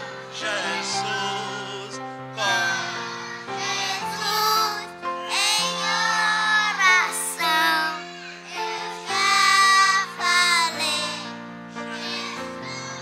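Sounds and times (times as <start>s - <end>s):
children singing: 0.0s - 13.0s.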